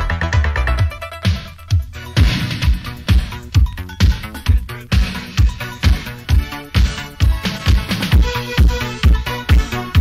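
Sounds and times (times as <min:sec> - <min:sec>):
electronic dance music: 0:00.0 - 0:10.0
steady kick drum: 0:00.8 - 0:10.0.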